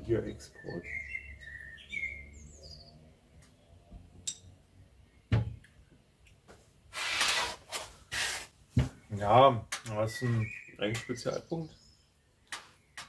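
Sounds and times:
faint high bird chirps: 0.2s - 3.7s, 9.9s - 13.0s.

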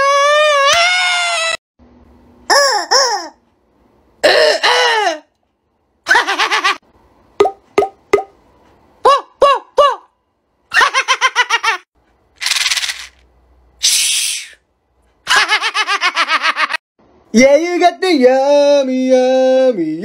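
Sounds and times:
brief hissing bursts: 13.8s - 14.6s
man laughing: 15.3s - 16.8s.

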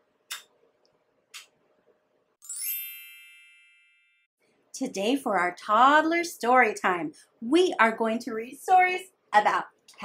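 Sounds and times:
bright ringing chime: 2.4s - 4.3s.

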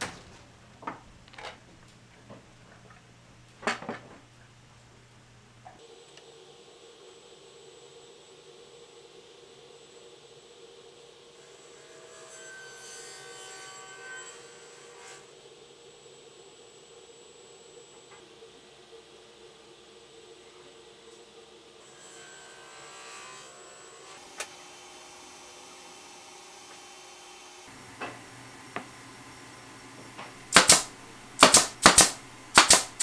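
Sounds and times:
faint steady hum: 0.0s - 12.6s, 13.5s - 33.0s.

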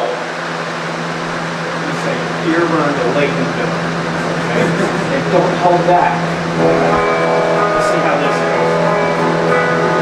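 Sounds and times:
electric guitar: 0.0s - 10.0s.

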